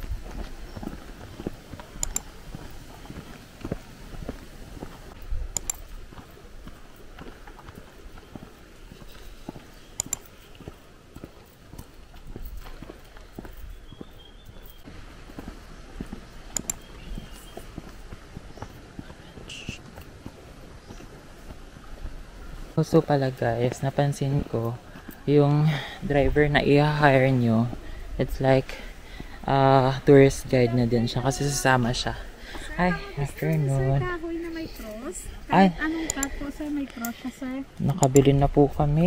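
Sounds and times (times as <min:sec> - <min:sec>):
footsteps on concrete: 0:00.0 - 0:05.2, 0:06.0 - 0:22.2, 0:24.3 - 0:25.8
sharp clicks: 0:02.0 - 0:02.3, 0:05.5 - 0:05.9, 0:10.0 - 0:10.3, 0:16.5 - 0:16.9, 0:36.0 - 0:37.2, 0:37.8 - 0:38.4.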